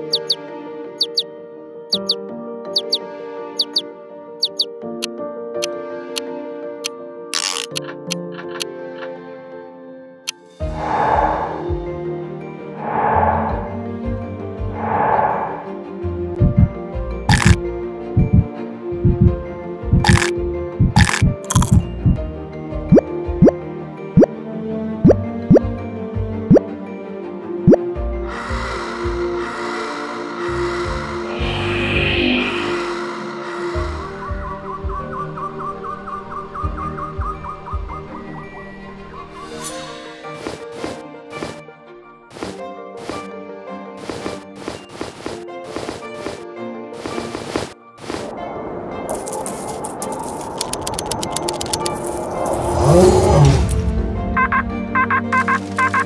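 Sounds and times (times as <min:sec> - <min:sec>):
bloop sound effects: 0:00.0 - 0:00.4, 0:17.3 - 0:17.6, 0:19.9 - 0:22.2
background music: 0:00.0 - 0:56.0
crackling clicking rattle: 0:07.4 - 0:08.6, 0:49.1 - 0:52.6
low rumble: 0:10.6 - 0:16.8.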